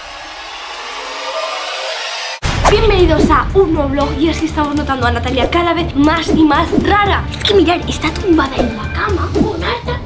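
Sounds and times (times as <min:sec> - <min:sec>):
rising rush of noise: 0:00.0 - 0:03.1.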